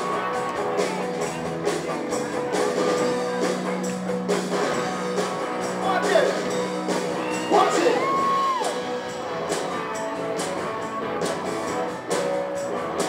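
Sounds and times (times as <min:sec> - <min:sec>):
drum kit: 0:00.0 - 0:13.0
electric guitar: 0:00.0 - 0:13.0
hand percussion: 0:00.0 - 0:13.0
live band playing: 0:00.0 - 0:13.0.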